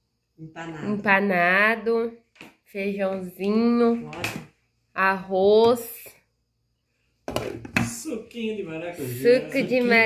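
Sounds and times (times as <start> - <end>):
woman speaking: 0.4 - 6.2, 9.0 - 10.0.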